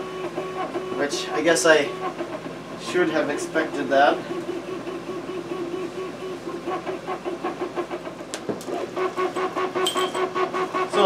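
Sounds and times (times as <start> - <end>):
pulsing mechanical hum: 0.0 - 11.0.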